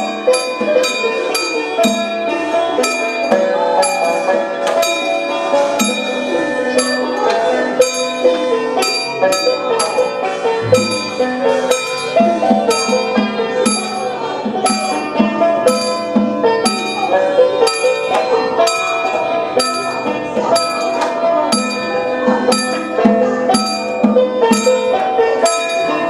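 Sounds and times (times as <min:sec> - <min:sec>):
wavering melodic line: 0:10.6 - 0:12.2
metal percussion gong-like strikes: 0:10.6 - 0:13.0.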